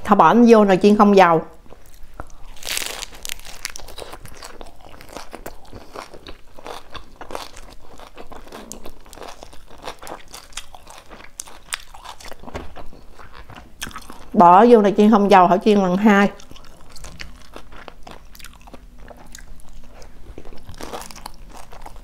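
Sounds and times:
crisp crunching chewing: 0:01.7 - 0:14.3, 0:16.4 - 0:22.0
loud crunch of biting: 0:01.8 - 0:14.2, 0:16.4 - 0:22.0.

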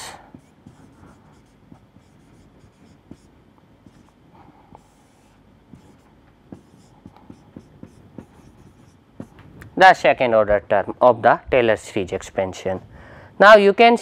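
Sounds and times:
marker scratching on whiteboard: 0:00.0 - 0:09.6
marker tapping on whiteboard: 0:00.3 - 0:04.1, 0:05.7 - 0:09.7.

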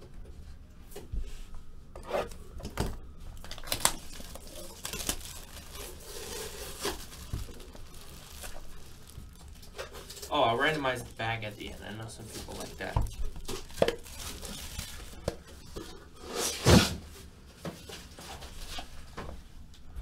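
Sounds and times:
plastic wrap tearing and crinkling: 0:03.3 - 0:15.8.

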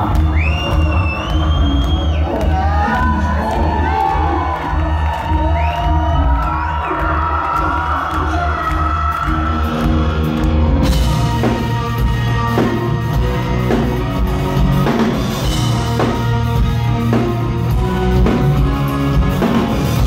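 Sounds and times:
crowd cheering: 0:00.0 - 0:20.0
drum kit: 0:00.0 - 0:20.0
live rock band playing: 0:00.0 - 0:20.0.

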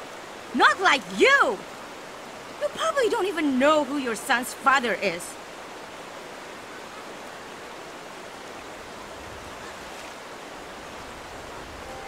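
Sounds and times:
river rushing over stones: 0:00.0 - 0:12.0.

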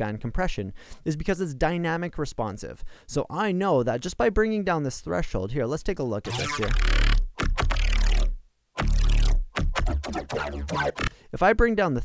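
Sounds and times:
synthesized bassline: 0:06.3 - 0:11.1.

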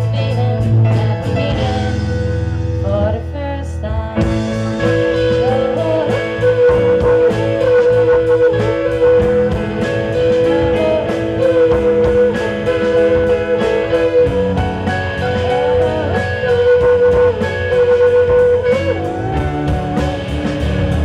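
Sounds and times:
bass guitar: 0:00.0 - 0:21.0
electric guitar lead notes: 0:00.0 - 0:21.0
steady drum beat: 0:04.2 - 0:21.0.

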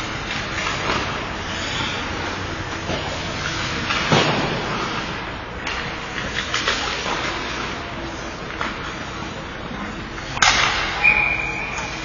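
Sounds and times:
stick or puck impact crack: 0:10.4 - 0:11.1
referee's whistle: 0:11.0 - 0:12.0.

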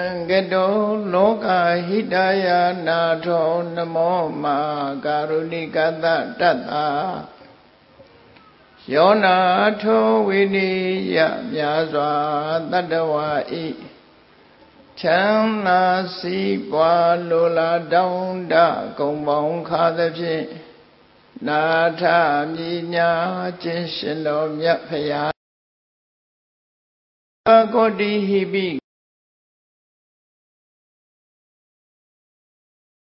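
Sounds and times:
person chanting: 0:00.0 - 0:07.6, 0:08.5 - 0:14.0, 0:14.9 - 0:20.7, 0:21.4 - 0:25.4, 0:27.5 - 0:28.8.

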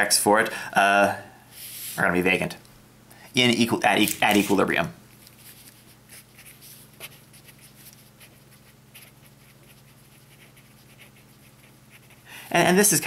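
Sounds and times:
faint low hum: 0:00.0 - 0:13.0
marker scratching on paper: 0:05.4 - 0:12.2.

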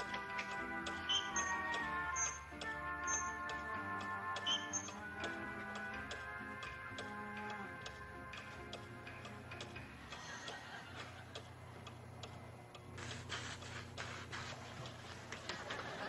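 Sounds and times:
light ticking: 0:00.0 - 0:15.5.

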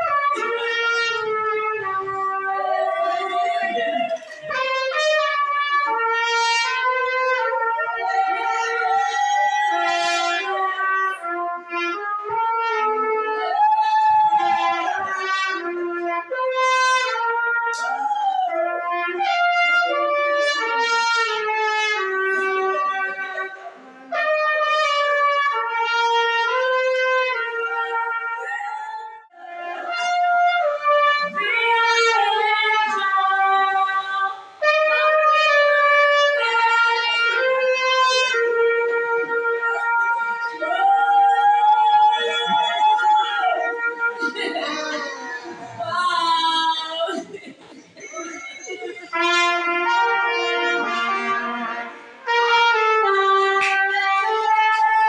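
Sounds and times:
solo trumpet melody: 0:00.0 - 0:03.0, 0:04.4 - 0:17.9, 0:18.5 - 0:41.1, 0:42.2 - 0:45.2, 0:49.1 - 0:55.0
voices: 0:00.0 - 0:16.2, 0:17.2 - 0:24.5, 0:26.6 - 0:34.7, 0:36.0 - 0:49.4.

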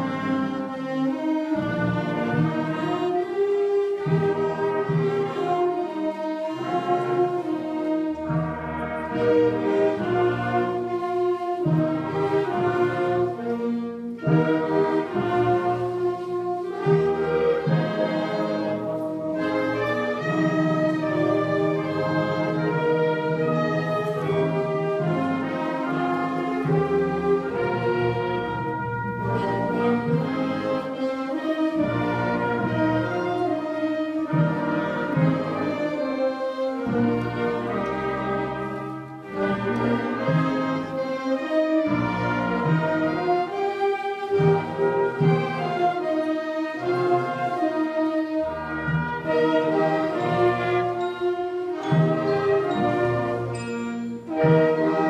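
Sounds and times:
concert band playing: 0:00.0 - 0:55.0.

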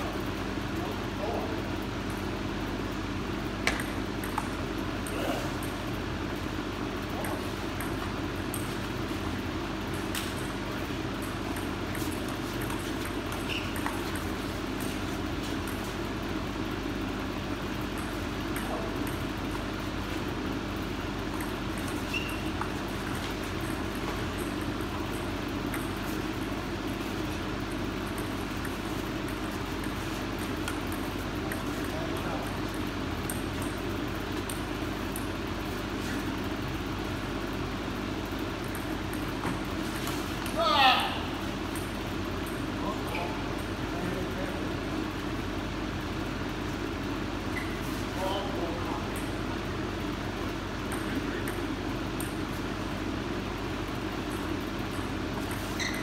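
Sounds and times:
room noise hum: 0:00.0 - 0:56.0
table tennis ball clicking: 0:11.2 - 0:14.3.

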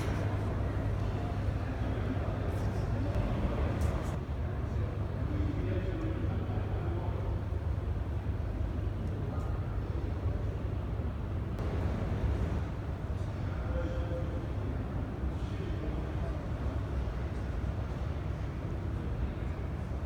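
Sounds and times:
distant voices talking: 0:00.0 - 0:04.2, 0:11.6 - 0:17.1.

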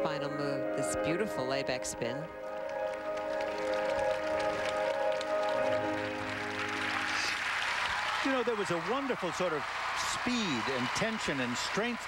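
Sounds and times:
crowd applause and cheering: 0:02.4 - 0:12.0.

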